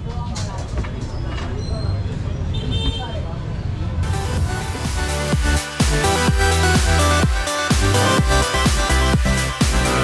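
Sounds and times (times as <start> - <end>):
distant voices chattering: 0.0 - 4.1.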